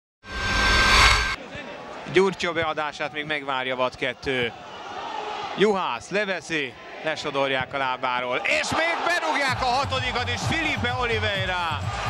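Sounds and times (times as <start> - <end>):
loud rushing sound effect: 0.2 - 1.4.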